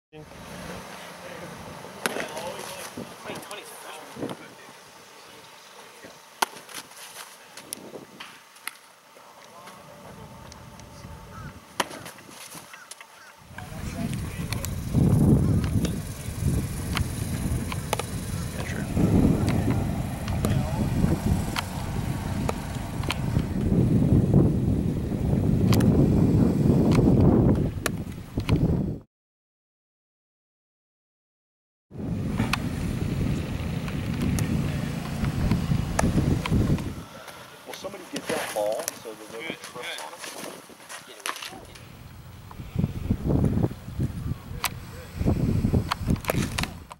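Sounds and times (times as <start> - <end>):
faint voices: 9.0 - 12.2, 13.3 - 23.6, 37.0 - 43.0, 44.0 - 45.4
ball popping into mitt: 11.8 - 12.2
gusting low rumble: 13.4 - 29.0, 32.0 - 37.1, 41.8 - 46.9.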